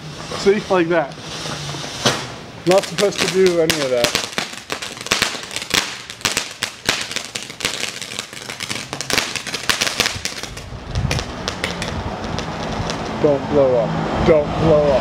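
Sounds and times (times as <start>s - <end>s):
firework fountain crackling: 0.0s - 13.6s.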